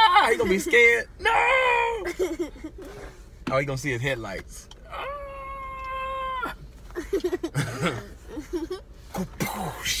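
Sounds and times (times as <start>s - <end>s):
person wailing: 4.9s - 6.6s.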